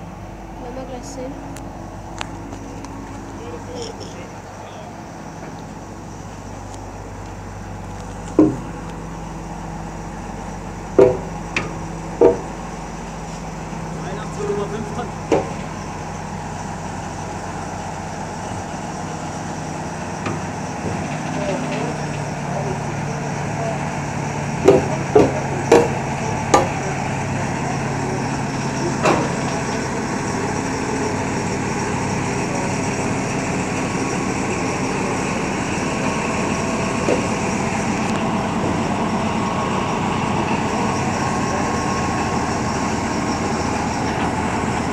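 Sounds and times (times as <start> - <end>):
diesel locomotive engine drone: 0.0 - 44.9
sharp knocks: 8.3 - 8.7, 11.0 - 12.6, 15.3 - 15.7, 24.6 - 26.8.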